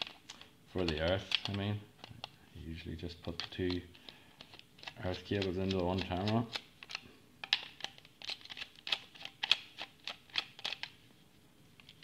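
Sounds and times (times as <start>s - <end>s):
screwdriver clicks and scratches: 0.0s - 2.4s, 3.2s - 11.0s.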